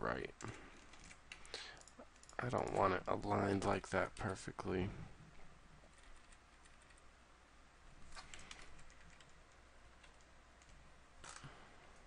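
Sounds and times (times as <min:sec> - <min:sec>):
computer keyboard clicks: 0:08.2 - 0:09.4.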